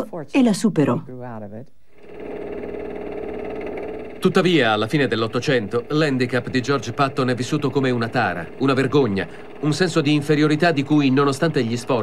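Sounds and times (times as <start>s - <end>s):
droning hum with rapid flutter: 1.8s - 12.0s.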